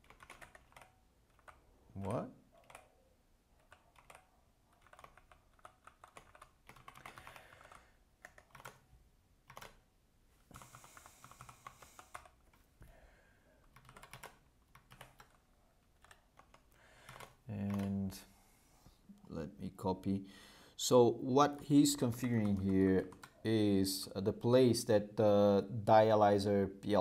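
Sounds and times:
typing on a keyboard: 0:00.0 - 0:03.0, 0:03.6 - 0:09.8, 0:10.5 - 0:12.6, 0:13.6 - 0:15.4, 0:16.0 - 0:18.0, 0:22.2 - 0:23.4.

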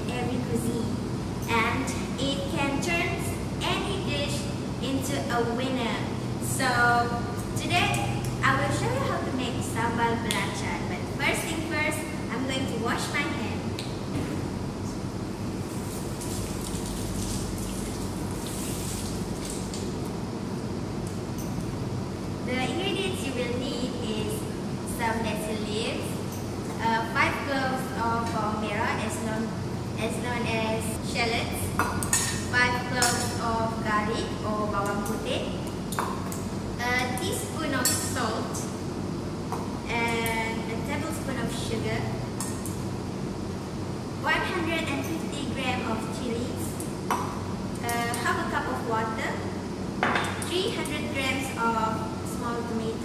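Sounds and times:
low mechanical hum: 0:00.0 - 0:53.0.

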